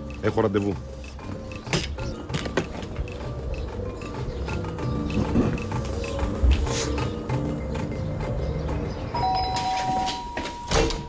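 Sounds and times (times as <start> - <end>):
two-tone doorbell chime: 9.1 - 11.0.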